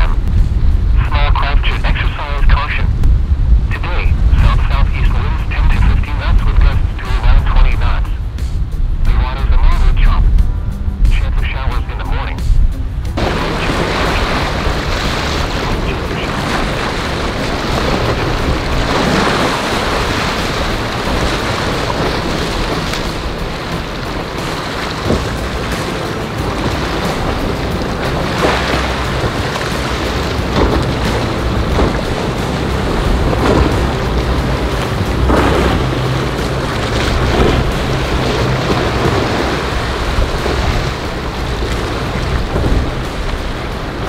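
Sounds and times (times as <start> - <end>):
boat wake washing: 0.0 - 44.0
choppy water rushing: 0.0 - 44.0
wind buffeting microphone: 0.0 - 44.0
outboard motor running: 13.0 - 44.0.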